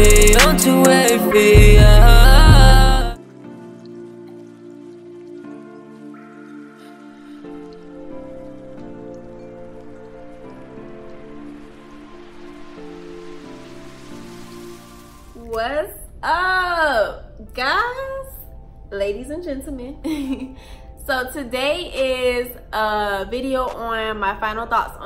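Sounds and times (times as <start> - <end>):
ambient synth chords: 0.0 - 15.4
rain-like hiss: 7.4 - 15.5
woman speaking: 15.4 - 20.1, 21.0 - 25.0.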